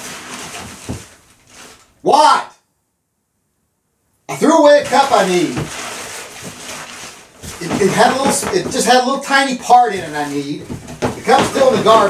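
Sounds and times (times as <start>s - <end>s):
rummaging through garbage can: 0.0s - 2.0s, 4.4s - 12.0s
dull thump: 7.4s - 12.0s.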